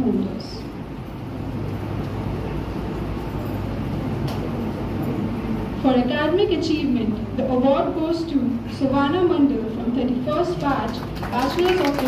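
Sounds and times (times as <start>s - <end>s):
low hum in large hall: 0.0s - 12.0s.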